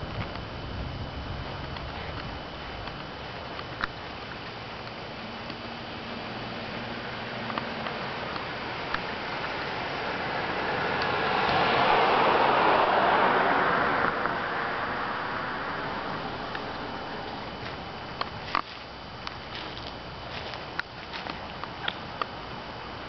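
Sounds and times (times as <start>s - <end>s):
car passing: 5.6s - 18.6s.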